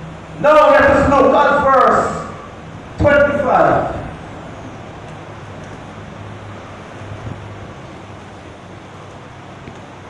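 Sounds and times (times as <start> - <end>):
low hall background noise: 0.0 - 10.0.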